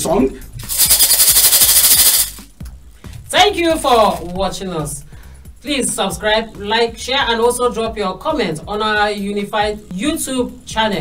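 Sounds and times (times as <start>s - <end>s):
loud fast rattling: 0.6s - 2.4s.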